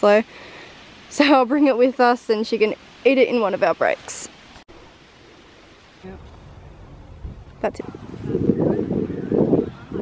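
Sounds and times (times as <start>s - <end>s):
faint background noise: 0.0s - 10.0s
low rumble: 6.0s - 8.7s.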